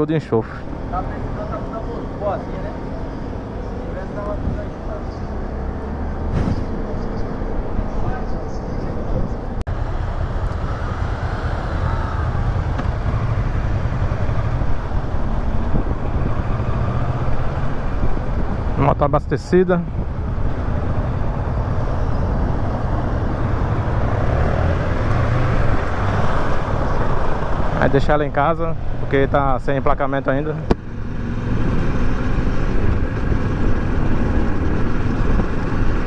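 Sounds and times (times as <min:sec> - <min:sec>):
motorcycle engines running: 0:00.0 - 0:36.0.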